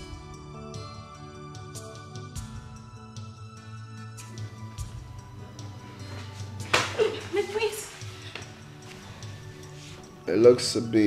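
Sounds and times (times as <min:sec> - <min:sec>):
background film music: 0:00.0 - 0:11.0.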